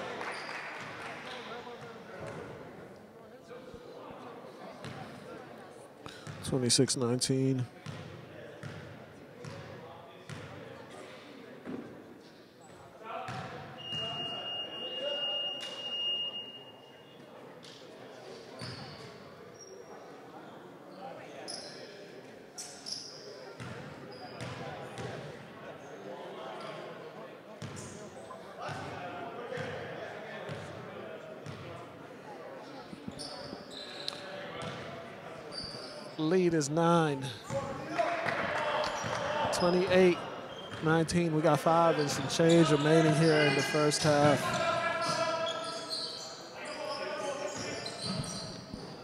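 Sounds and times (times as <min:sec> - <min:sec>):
scattered voices: 0:41.0 - 0:45.8.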